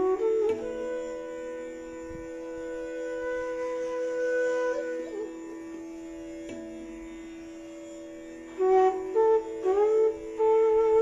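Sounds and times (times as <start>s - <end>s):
bamboo flute melody: 0.0s - 6.0s, 8.5s - 11.0s.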